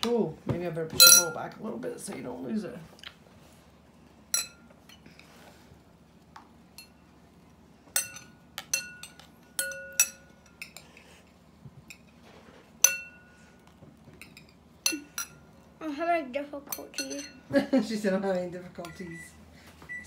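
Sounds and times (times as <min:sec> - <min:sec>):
metal spoon clinking on bowls: 0:01.0 - 0:01.4, 0:04.3 - 0:05.0, 0:06.7 - 0:07.0, 0:07.9 - 0:11.0, 0:12.8 - 0:13.4, 0:14.2 - 0:15.7, 0:16.7 - 0:17.5.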